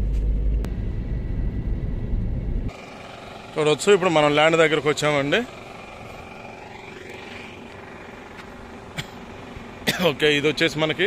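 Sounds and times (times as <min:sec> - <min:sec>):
distant highway traffic drone: 0:00.0 - 0:11.0.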